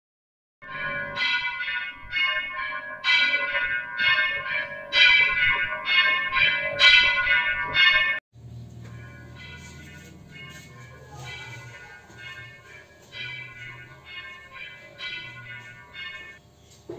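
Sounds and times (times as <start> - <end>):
temple bells ringing: 0.6 - 16.5.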